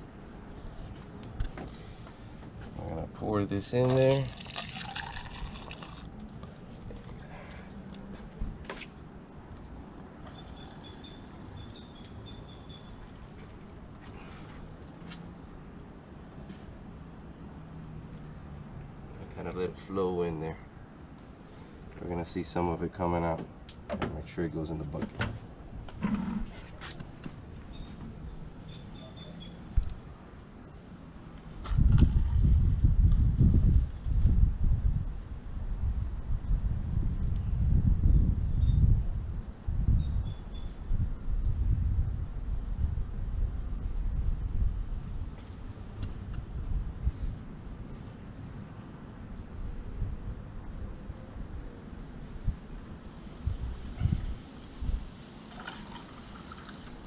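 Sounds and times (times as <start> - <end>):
wind buffeting microphone: 31.6 - 48.0, 49.5 - 55.2.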